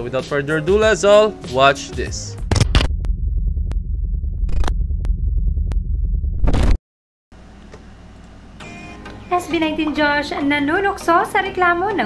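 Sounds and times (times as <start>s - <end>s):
heavy bass synth pulse: 2.4s - 6.8s
faint music: 8.6s - 12.0s.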